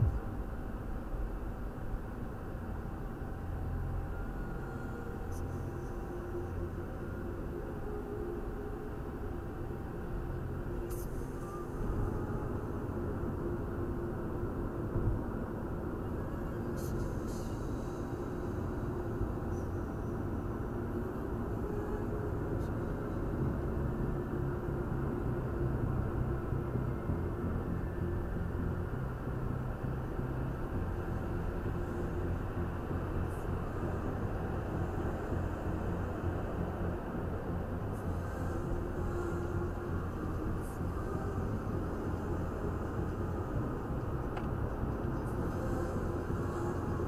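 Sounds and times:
road and engine rumble: 0:00.0 - 0:47.0.

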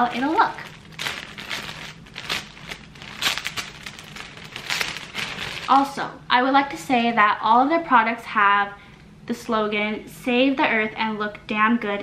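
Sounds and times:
plastic bag crinkling: 0:00.0 - 0:06.0.

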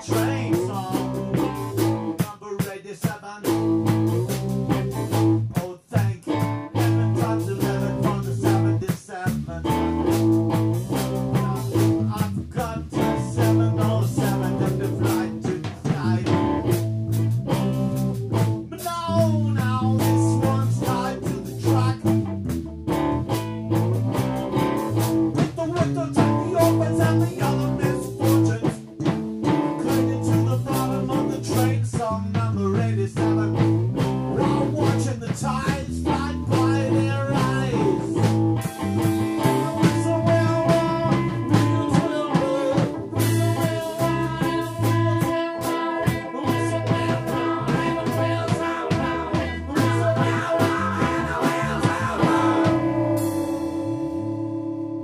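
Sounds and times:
man singing: 0:00.0 - 0:04.0, 0:04.7 - 0:10.3, 0:11.2 - 0:16.7, 0:18.6 - 0:22.2, 0:25.4 - 0:38.4, 0:39.2 - 0:53.6
live band playing: 0:00.0 - 0:55.0.

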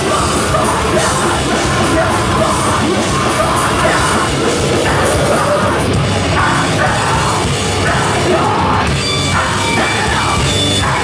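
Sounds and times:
distorted guitars: 0:00.0 - 0:11.0
drums: 0:00.0 - 0:11.0.

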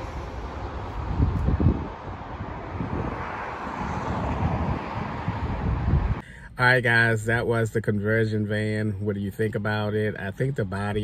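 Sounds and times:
steady outdoor hiss: 0:00.0 - 0:02.8
wind buffeting microphone: 0:00.0 - 0:06.2.

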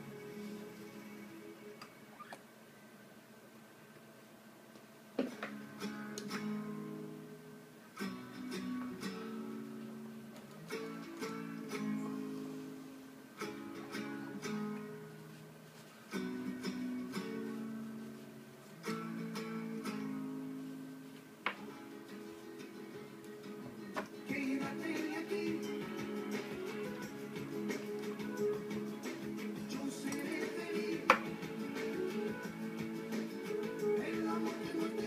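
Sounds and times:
acoustic guitar playing: 0:00.0 - 0:01.7, 0:05.2 - 0:35.0.

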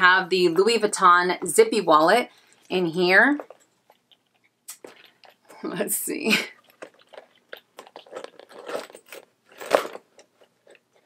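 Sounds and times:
canvas bag rustling and creaking: 0:06.8 - 0:11.0.

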